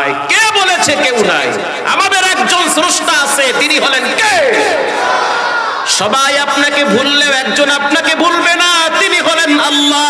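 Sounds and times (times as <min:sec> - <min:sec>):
crowd voices: 0:04.0 - 0:06.0.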